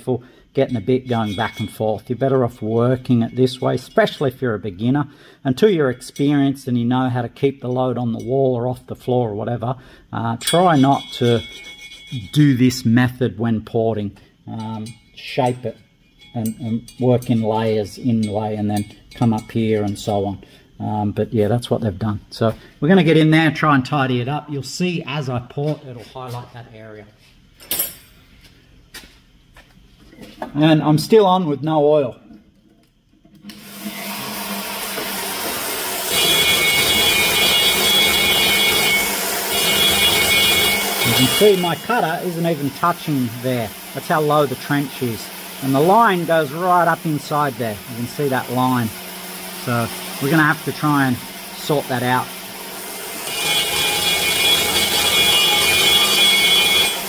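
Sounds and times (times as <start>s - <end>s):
die grinder whining: 33.4s - 57.0s.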